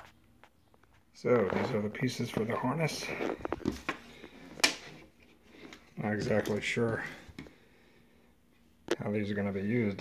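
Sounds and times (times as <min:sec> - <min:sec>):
faint handling noise: 0:00.0 - 0:07.6.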